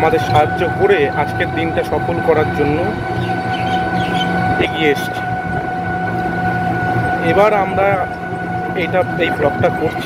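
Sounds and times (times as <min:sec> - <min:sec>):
high-pitched whine: 0:00.0 - 0:10.0
vehicle low rumble: 0:00.0 - 0:10.0.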